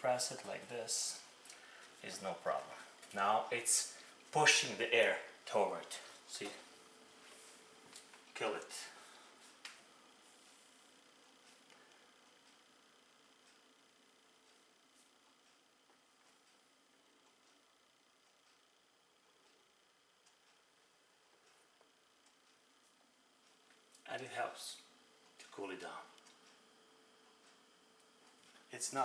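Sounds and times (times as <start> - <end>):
faint fan hiss: 0.0 - 29.0.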